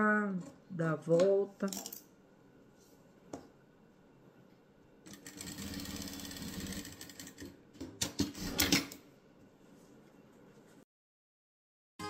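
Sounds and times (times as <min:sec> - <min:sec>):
sewing machine stitching: 0:05.1 - 0:07.5.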